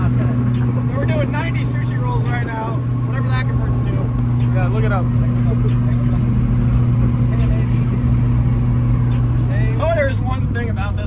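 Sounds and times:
road and tyre noise: 0.0 - 11.0
small truck engine running: 0.0 - 11.0.

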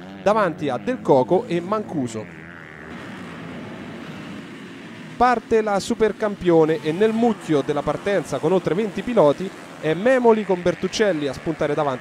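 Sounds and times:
motocross bike engines: 0.0 - 12.0.

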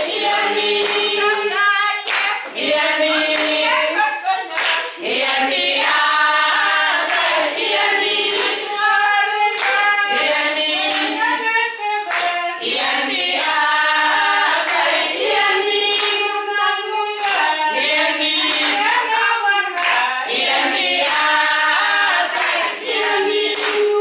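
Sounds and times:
women singing together: 0.0 - 24.0
hand clapping: 0.1 - 3.8, 4.5 - 11.4, 12.1 - 16.3, 17.1 - 19.1, 19.7 - 24.0.

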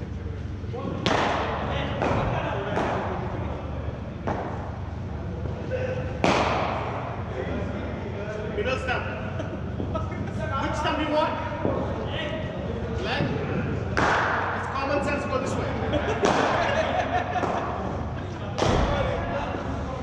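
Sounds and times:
indistinct chatter: 0.0 - 20.0.

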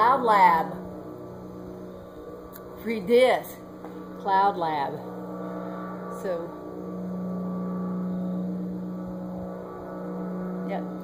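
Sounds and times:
blimp propeller engines droning: 0.0 - 11.0.

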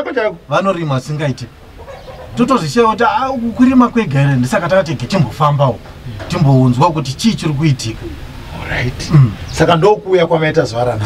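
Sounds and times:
man speaking: 0.0 - 1.6, 2.4 - 11.0.

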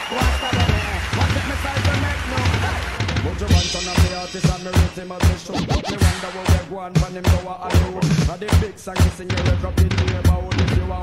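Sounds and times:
dancehall music with steady beat: 0.0 - 11.0
turntable scratching: 0.1 - 10.8.

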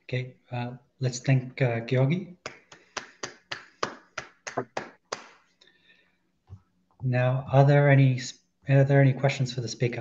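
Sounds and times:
hand clapping: 2.4 - 5.5.

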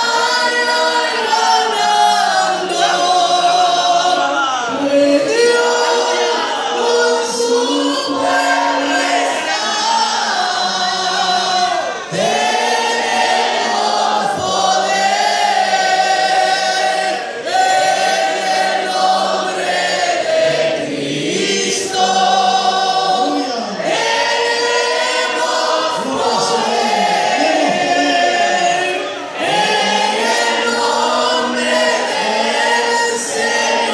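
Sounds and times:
group singing a hymn: 0.0 - 33.9.

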